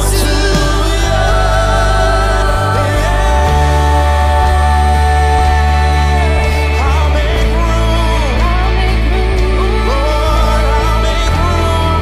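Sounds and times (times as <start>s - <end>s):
bass: 0.0s - 12.0s
keyboard chords: 0.0s - 12.0s
singers singing: 0.0s - 12.0s.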